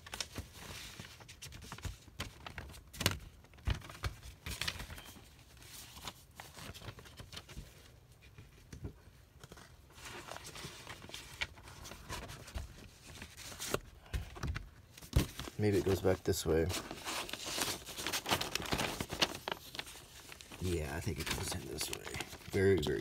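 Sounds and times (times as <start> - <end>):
paper rustling and scraping: 9.4 - 13.9, 15.0 - 23.0.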